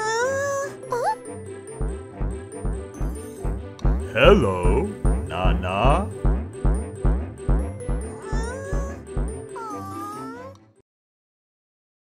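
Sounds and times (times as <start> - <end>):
cartoon music with steady beat: 0.0 - 10.5
high wavering cartoon voice: 4.1 - 6.1, 8.2 - 9.0.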